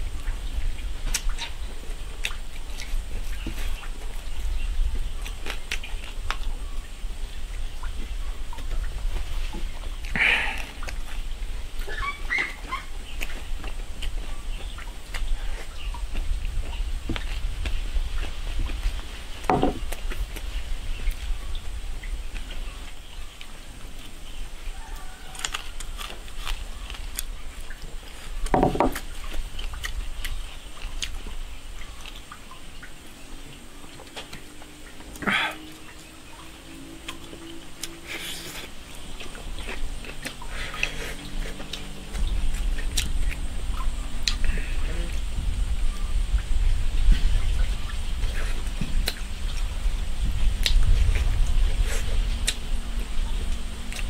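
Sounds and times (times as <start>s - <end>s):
low background rumble: 0.0s - 54.0s
chewing and lip smacking: 1.1s - 4.4s, 5.2s - 6.5s, 11.8s - 21.3s, 24.8s - 32.6s, 33.8s - 43.4s, 44.2s - 45.2s, 47.1s - 49.7s, 50.5s - 52.7s, 53.5s - 54.0s.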